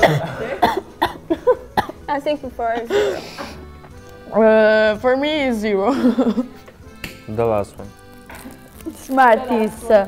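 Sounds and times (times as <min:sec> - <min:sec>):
woman coughing: 0:00.0 - 0:03.5.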